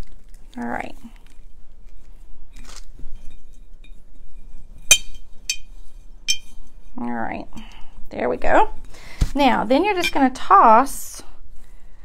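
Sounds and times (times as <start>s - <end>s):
glass jar clinking: 4.9s - 6.6s.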